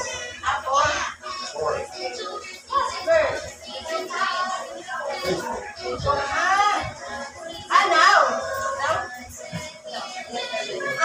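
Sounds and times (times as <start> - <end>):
background music: 0.0 - 11.0
people's voices: 0.0 - 11.0.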